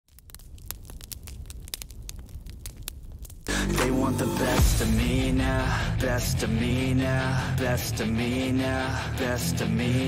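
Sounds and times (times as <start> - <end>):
fire crackling and popping: 0.0 - 6.2
low rumble: 0.2 - 10.0
loud music: 3.5 - 10.0.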